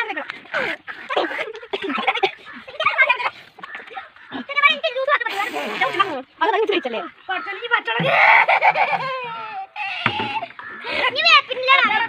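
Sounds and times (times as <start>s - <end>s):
children laughing and giggling: 0.0s - 12.0s.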